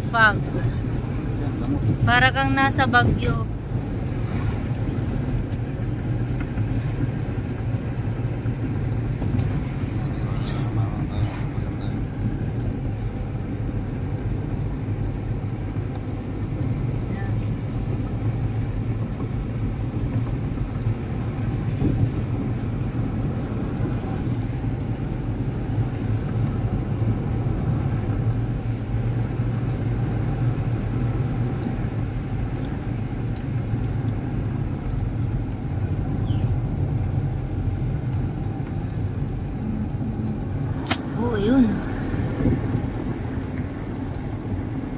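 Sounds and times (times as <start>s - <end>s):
vehicle engine and road noise: 0.0s - 44.9s.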